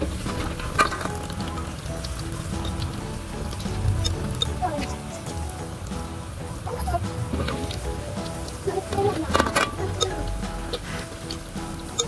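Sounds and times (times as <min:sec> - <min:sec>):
batter frying in hot oil: 0:00.0 - 0:12.0.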